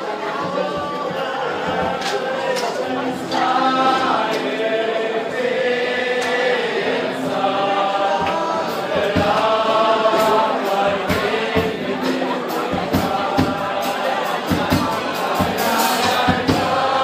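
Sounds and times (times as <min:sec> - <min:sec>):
men singing chant-like melody: 0:00.1 - 0:17.0.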